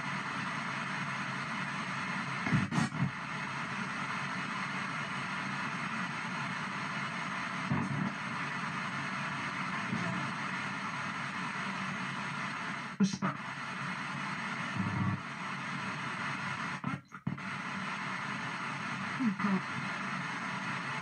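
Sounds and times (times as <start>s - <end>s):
radio static hiss: 0.0s - 21.0s
snatches of radio broadcast: 0.0s - 21.0s.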